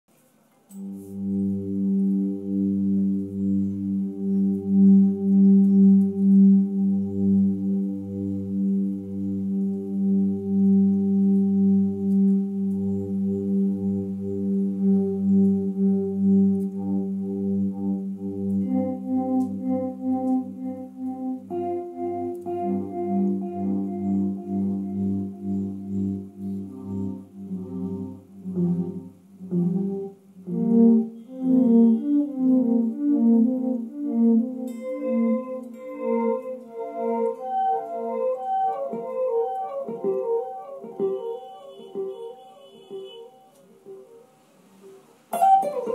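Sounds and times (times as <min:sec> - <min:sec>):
ambient music low drone: 0:00.8 - 0:42.0.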